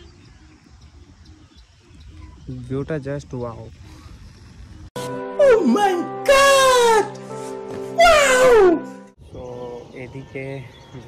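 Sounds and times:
background music: 0:05.0 - 0:09.3
man's high-pitched cry: 0:08.0 - 0:08.9.

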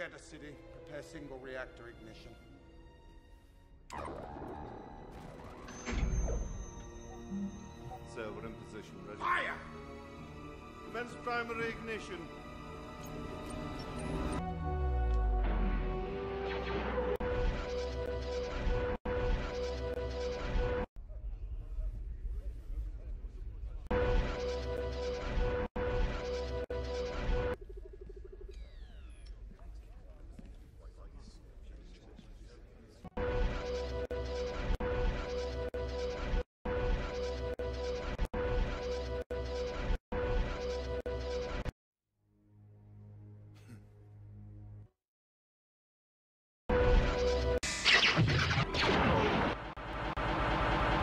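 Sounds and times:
dramatic film music: 0:00.0 - 0:20.9, 0:23.9 - 0:29.0.

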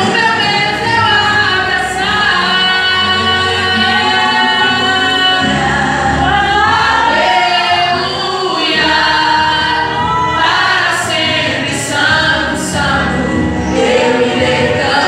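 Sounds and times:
amplified instrumental accompaniment: 0:00.0 - 0:15.0
woman singing gospel song: 0:00.0 - 0:15.0.

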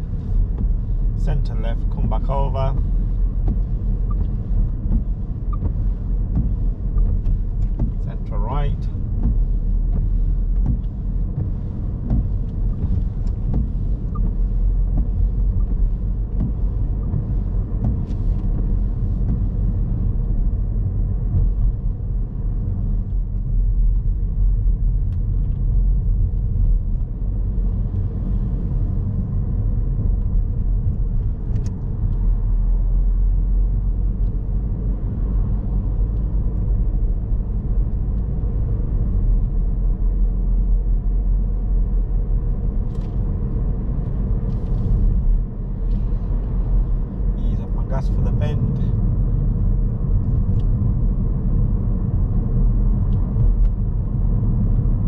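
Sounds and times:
car engine and tyre noise: 0:00.0 - 0:55.0.

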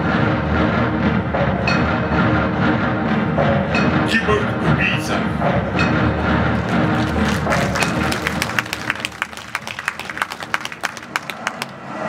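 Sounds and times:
film music low held chords: 0:00.0 - 0:09.4
audience clapping: 0:06.5 - 0:12.0.

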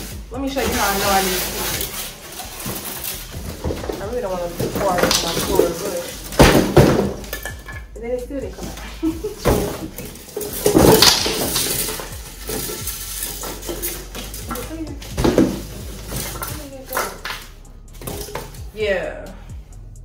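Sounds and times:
cardboard rustling and scraping: 0:00.0 - 0:07.3, 0:08.5 - 0:18.6
background music: 0:00.0 - 0:20.0
glass panels knocking and clinking: 0:02.6 - 0:08.0, 0:08.6 - 0:18.6.

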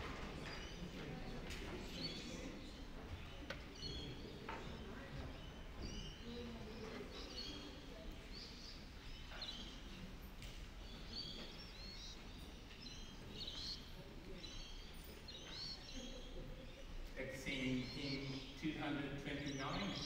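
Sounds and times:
high bird chirps: 0:10.8 - 0:20.0.

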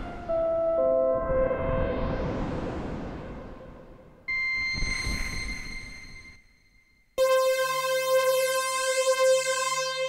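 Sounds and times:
low rumble: 0:01.2 - 0:06.3
bright high-pitched synth tone: 0:04.3 - 0:10.0
synthesizer noisy tail: 0:07.2 - 0:10.0.

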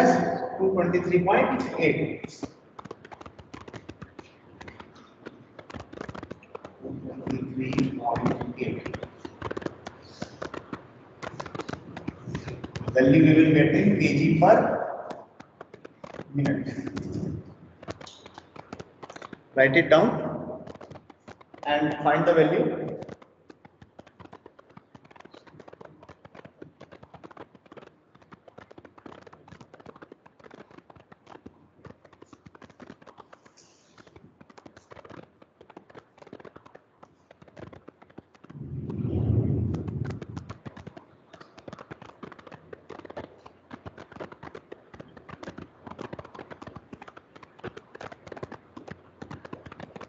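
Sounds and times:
light rapid clicks and taps: 0:01.0 - 0:13.2, 0:14.1 - 0:50.0.

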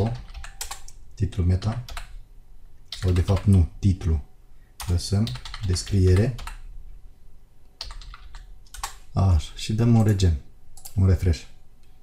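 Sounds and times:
typing on computer keyboard: 0:00.0 - 0:01.0, 0:02.9 - 0:03.6, 0:04.8 - 0:06.6, 0:07.8 - 0:09.0.

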